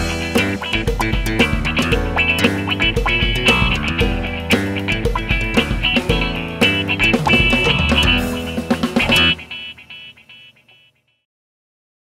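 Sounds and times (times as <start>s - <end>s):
guitar chord ringing: 0.0s - 11.1s.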